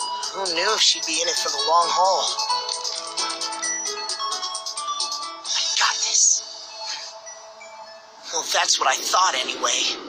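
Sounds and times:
background music with ticking beat: 0.0s - 8.4s.

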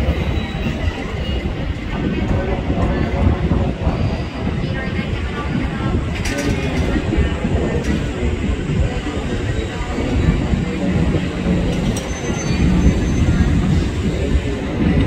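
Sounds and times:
low rumble of electric trains: 0.0s - 15.0s.

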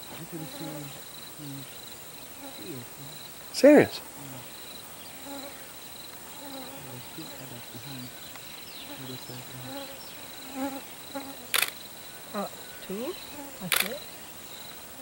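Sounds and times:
insects high-pitched pulsing trill: 0.0s - 15.0s
sharp click: 11.6s - 11.8s, 13.7s - 14.0s.

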